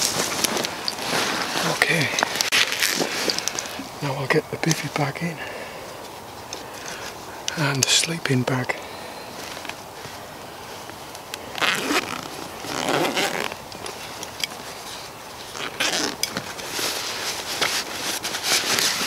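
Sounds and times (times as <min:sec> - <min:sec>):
fabric rustling: 0:00.0 - 0:04.0, 0:11.5 - 0:19.0.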